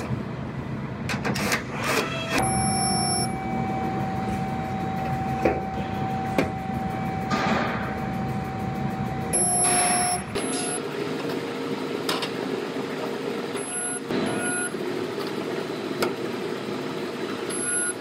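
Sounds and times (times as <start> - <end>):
steady machine hum: 0.0 - 1.3, 2.3 - 18.0
whining tones: 2.3 - 10.8.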